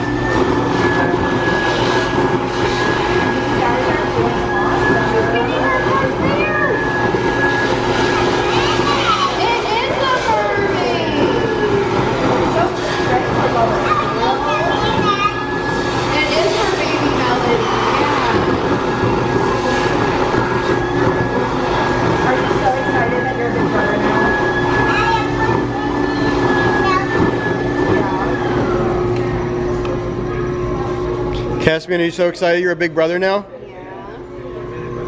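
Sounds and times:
stuffing machine whooshing: 0.0s - 29.1s.

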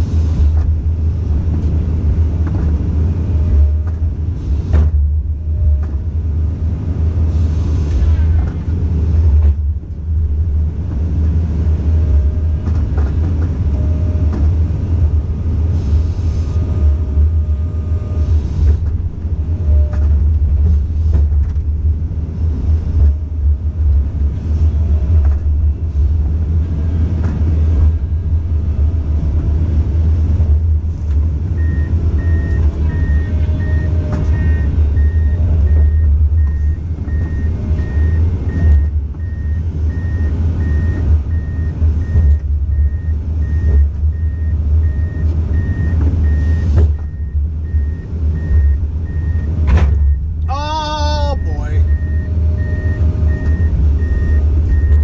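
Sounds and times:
excavator diesel engine rumbling: 0.0s - 55.0s
beeping alarm: 31.6s - 50.2s, 51.1s - 55.0s.

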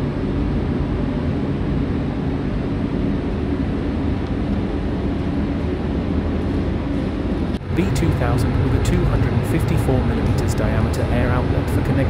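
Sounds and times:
air scrubber fan rushing air: 0.0s - 12.0s.

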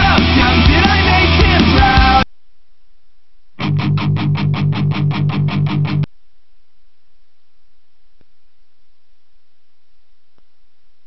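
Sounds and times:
rock song: 0.0s - 2.2s, 3.6s - 6.1s
guitar strummed steadily: 3.6s - 6.1s.

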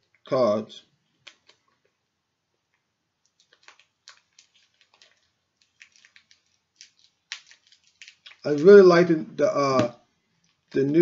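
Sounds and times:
wrapper crinkling: 3.2s - 9.0s, 10.3s - 10.8s.

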